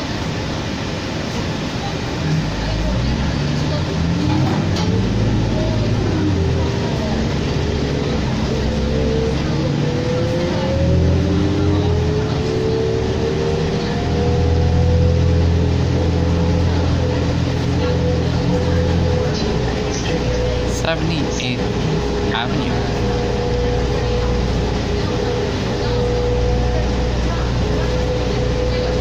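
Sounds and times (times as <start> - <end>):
bus engine drone: 0.0 - 29.0
bus engine whine climbing: 0.0 - 29.0.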